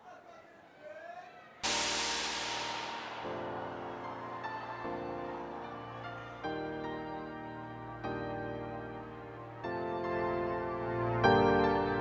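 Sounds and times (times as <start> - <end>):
crash-like wash of noise: 1.6 - 6.4
electronic dance music: 1.6 - 12.0.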